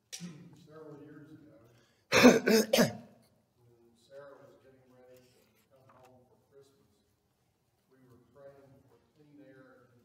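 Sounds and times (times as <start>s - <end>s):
man coughing: 2.1s - 3.2s.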